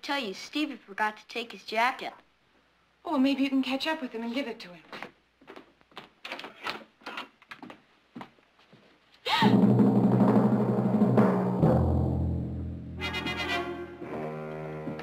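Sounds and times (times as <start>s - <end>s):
footsteps on wooden floor: 4.8s - 6.2s, 7.6s - 9.0s, 14.1s - 15.0s.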